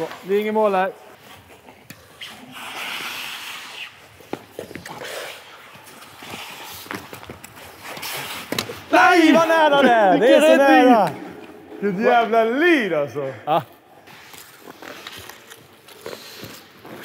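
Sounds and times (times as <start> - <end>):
skates scraping on ice: 0.0 - 11.4, 13.9 - 17.0.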